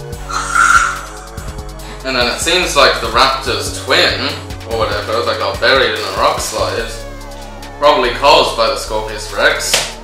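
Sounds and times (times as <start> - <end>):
background music: 0.0 - 10.0
toy dinosaur call: 0.3 - 1.4.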